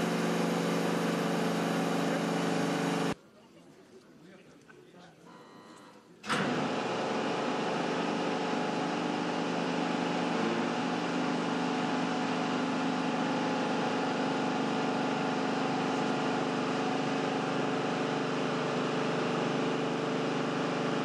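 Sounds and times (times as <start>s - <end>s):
machine engine running: 0.0s - 3.2s, 6.3s - 21.0s.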